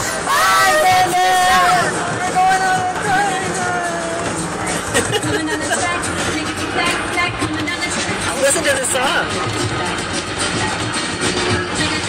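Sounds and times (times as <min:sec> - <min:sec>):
kiddie train ride running: 0:00.0 - 0:12.0.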